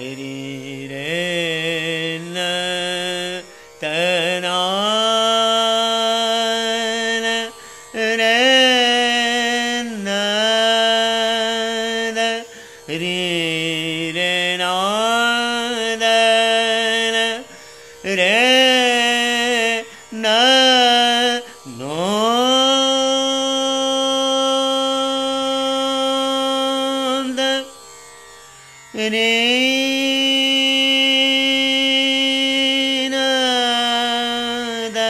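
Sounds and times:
man singing long held notes: 0.0s - 27.8s, 28.9s - 35.0s
tanpura drone: 0.0s - 35.0s.

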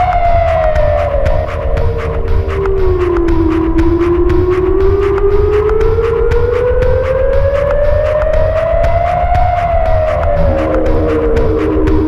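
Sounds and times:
experimental electronic music: 0.0s - 12.0s.

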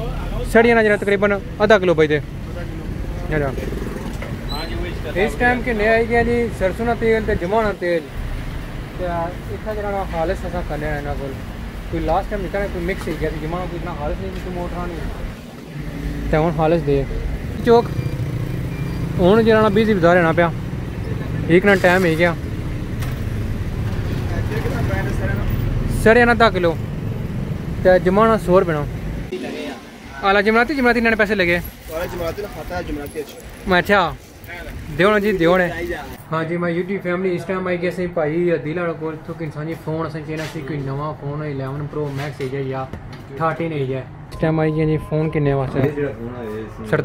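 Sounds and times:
vehicle engines rumbling: 0.0s - 47.0s
man speaking: 43.4s - 47.0s.

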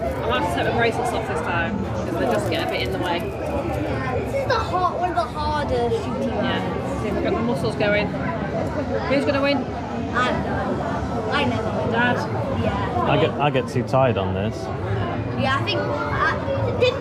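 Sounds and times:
people talking: 0.0s - 9.6s, 15.4s - 17.0s
background chatter: 0.0s - 17.0s.

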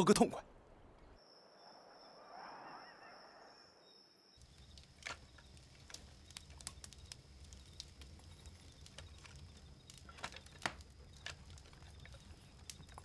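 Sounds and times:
campfire crackling and popping: 4.4s - 13.0s.

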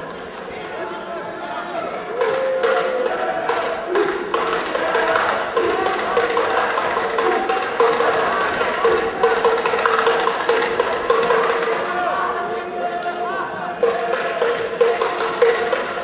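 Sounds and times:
voices: 0.0s - 16.0s
tapping percussive beat: 2.2s - 12.1s, 13.8s - 16.0s.

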